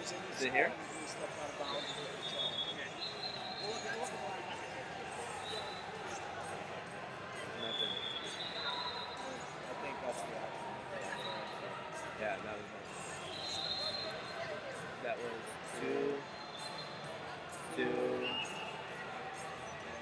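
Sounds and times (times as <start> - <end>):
indistinct voices in hall: 0.0 - 20.0
short high-pitched whistles: 1.6 - 4.0, 7.7 - 9.3, 13.2 - 14.4, 16.3 - 17.1.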